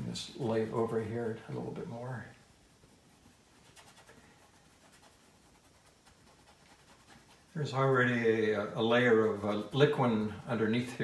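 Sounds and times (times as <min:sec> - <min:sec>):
paintbrush scratching on canvas: 0:00.0 - 0:11.0.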